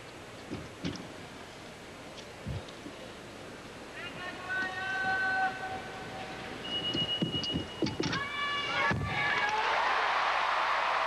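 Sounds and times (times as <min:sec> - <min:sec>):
crowd applause and cheering: 0:09.2 - 0:11.0.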